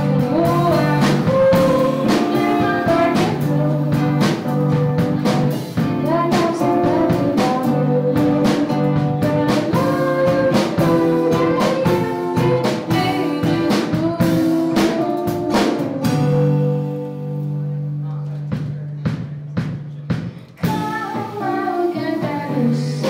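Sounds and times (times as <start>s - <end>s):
woman singing: 0.0s - 17.0s, 20.6s - 23.0s
strummed acoustic guitars: 0.0s - 18.5s
drum kit beat: 0.0s - 23.0s.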